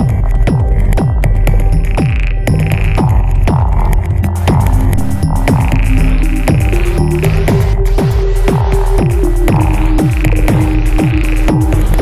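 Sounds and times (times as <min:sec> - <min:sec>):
deep droning bass: 0:00.0 - 0:12.0
fast ticking percussion: 0:00.0 - 0:12.0.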